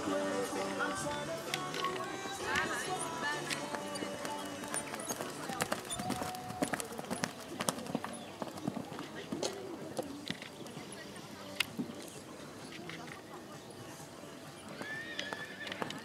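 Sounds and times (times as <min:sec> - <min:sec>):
background music: 0:00.0 - 0:07.0
hoofbeats on sand: 0:03.7 - 0:10.1.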